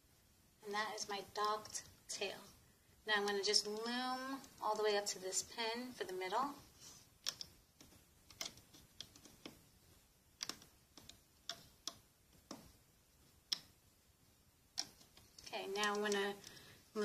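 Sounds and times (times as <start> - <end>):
hook clicking against plastic pegs: 7.2 - 13.8, 14.7 - 16.6.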